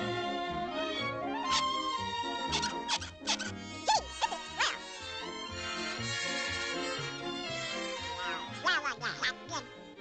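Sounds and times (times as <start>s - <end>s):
orchestral background music: 0.0s - 10.0s
quacking cartoon voice: 2.6s - 4.8s, 8.2s - 9.7s.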